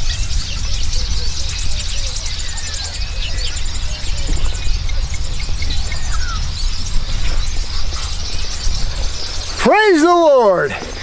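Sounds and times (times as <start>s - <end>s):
steady low rumble: 0.0s - 9.7s
birds chirping: 0.0s - 11.0s.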